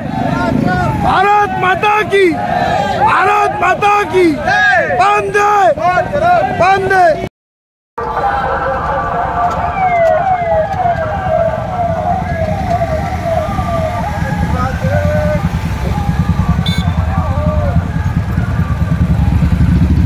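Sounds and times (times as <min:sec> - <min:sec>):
motorcycle engines running: 0:00.0 - 0:07.2, 0:08.4 - 0:20.0
police siren: 0:08.0 - 0:20.0.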